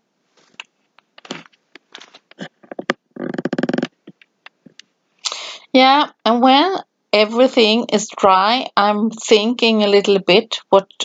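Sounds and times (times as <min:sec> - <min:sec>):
brush scraping and clicking on plastic: 0:00.4 - 0:04.9.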